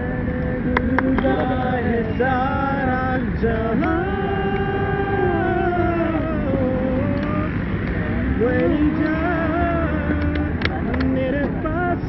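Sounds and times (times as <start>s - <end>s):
heavy low rumble: 0.0s - 12.0s.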